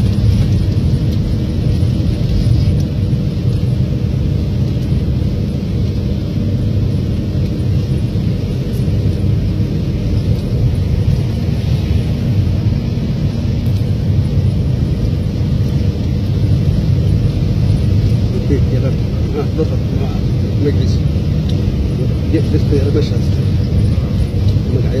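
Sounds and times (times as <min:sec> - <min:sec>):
vehicle engine and tyres rumbling: 0:00.0 - 0:25.0.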